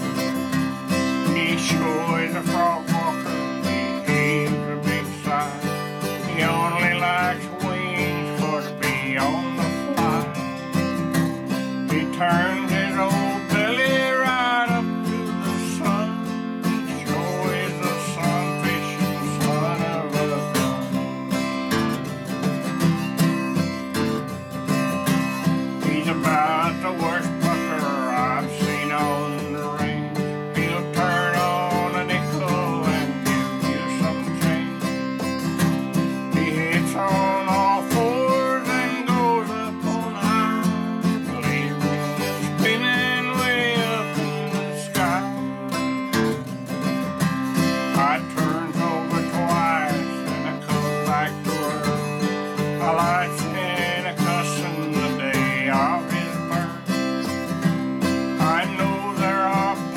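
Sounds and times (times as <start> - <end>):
man singing ballad: 0.0 - 21.5, 25.3 - 46.0, 47.4 - 59.9
acoustic guitar strumming: 0.0 - 59.9.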